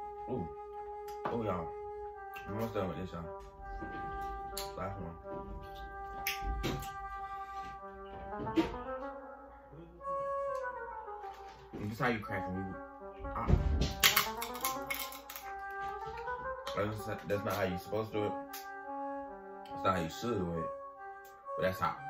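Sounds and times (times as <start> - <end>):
music with long held notes: 0.0 - 22.0
seafood shells cracking: 13.9 - 15.7.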